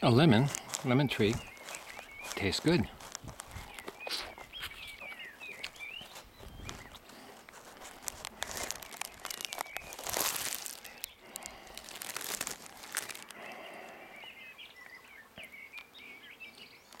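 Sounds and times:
rustling and crackling on microphone: 0.0s - 14.0s, 16.5s - 17.0s
birds chirping: 0.0s - 17.0s.

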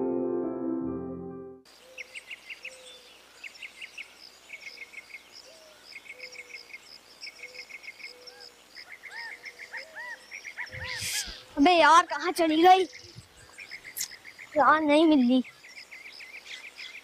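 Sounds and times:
birds chirping: 1.8s - 17.0s.

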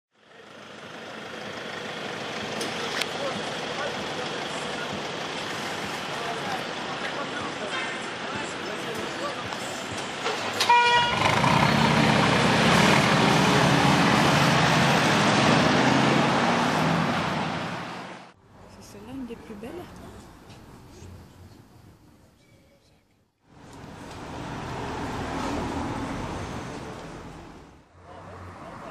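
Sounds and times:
street noise with voices: 0.2s - 15.1s, 18.3s - 28.9s
loud car engine and exhaust: 0.2s - 18.4s
car horn toot: 10.6s - 11.5s.

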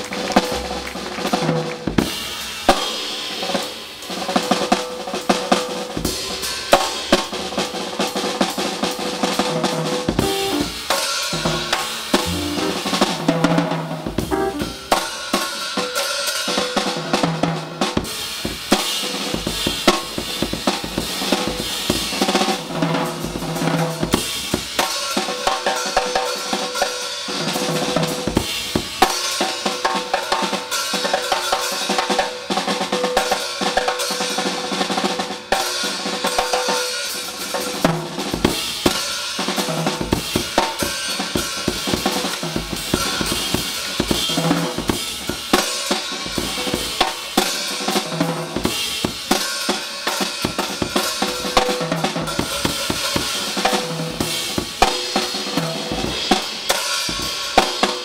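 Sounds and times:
jazz drum kit solo: 0.0s - 2.3s, 8.9s - 15.5s, 37.6s - 58.0s.

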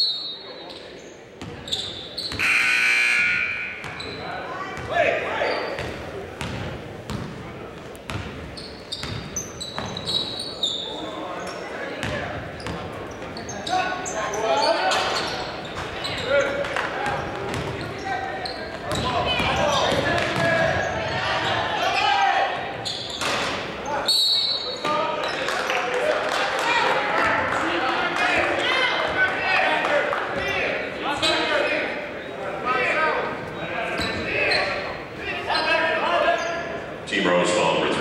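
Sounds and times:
sneakers squeaking: 0.0s - 25.5s, 30.3s - 32.4s, 33.2s - 37.0s.

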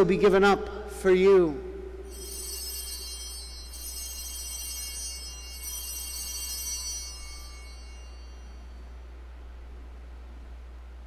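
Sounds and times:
small hand bells ringing: 2.1s - 9.2s.

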